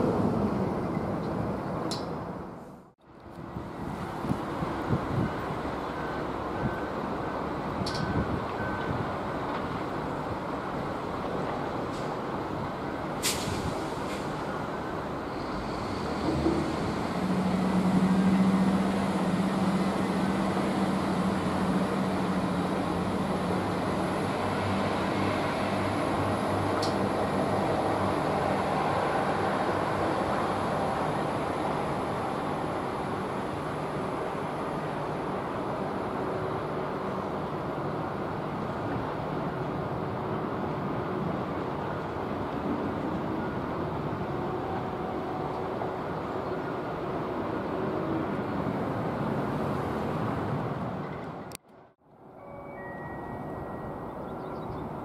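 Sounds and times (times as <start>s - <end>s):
train engine hum: 0.0s - 55.0s.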